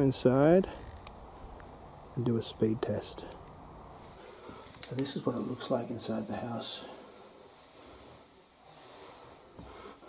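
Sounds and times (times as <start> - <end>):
low even hiss: 0.0 - 10.0.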